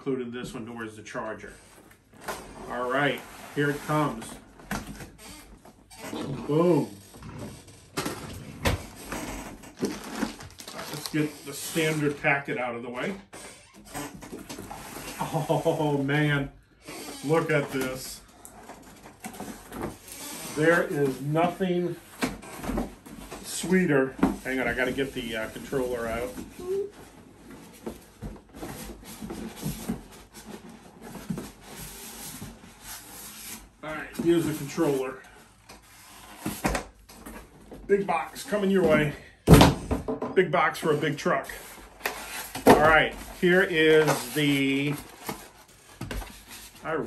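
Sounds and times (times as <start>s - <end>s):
plastic and cardboard rustling: 0.5s - 13.2s, 13.8s - 16.3s, 17.1s - 47.0s.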